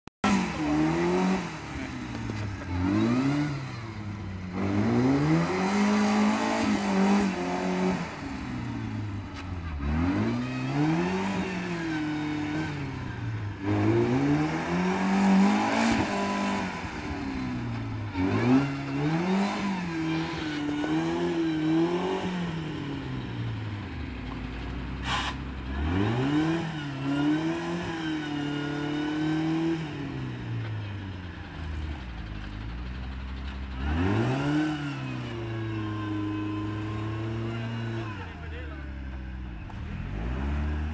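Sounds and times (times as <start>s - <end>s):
off-road vehicle engine revving: 0.2s - 40.9s.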